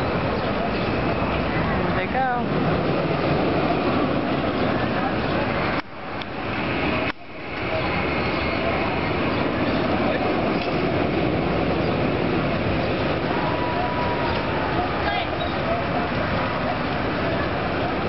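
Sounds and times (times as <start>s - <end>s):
rumbling noise: 0.0s - 18.0s
voices: 0.0s - 18.0s.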